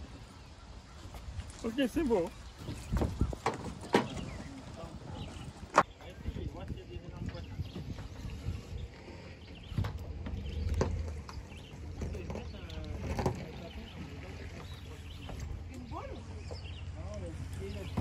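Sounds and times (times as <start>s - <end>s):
low steady rumble: 4.4s - 18.0s.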